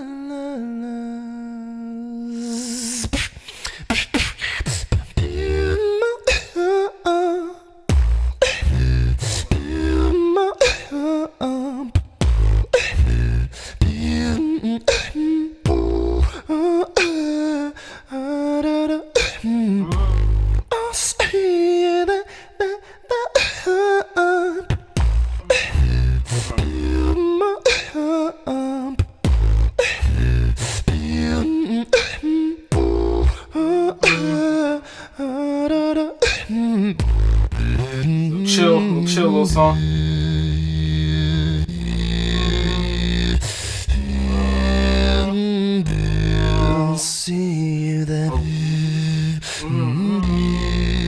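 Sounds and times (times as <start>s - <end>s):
vocal melody: 0.0s - 51.0s
beatboxing bass kicks and clicks: 3.1s - 5.6s, 7.9s - 10.0s, 12.0s - 16.4s, 19.2s - 20.7s, 24.7s - 27.9s, 29.0s - 34.4s, 36.2s - 38.1s
man singing held notes: 31.2s - 34.8s, 38.3s - 51.0s.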